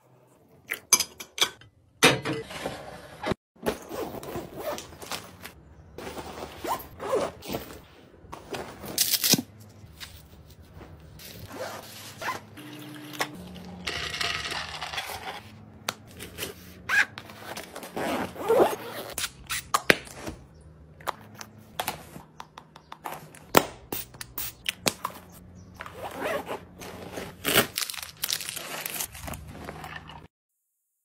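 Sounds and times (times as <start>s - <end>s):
packaging rustling: 26.9s - 29.5s.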